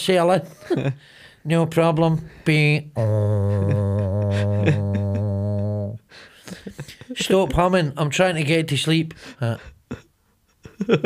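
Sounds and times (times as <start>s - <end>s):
man humming low drone: 3.0s - 6.0s.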